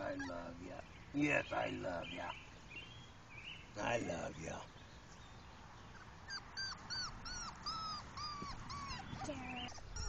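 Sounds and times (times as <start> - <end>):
puppy whining: 0.0 - 0.8, 5.9 - 10.0.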